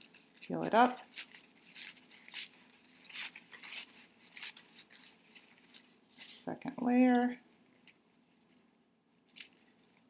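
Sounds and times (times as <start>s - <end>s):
paper napkins crinkling: 0.0s - 6.2s.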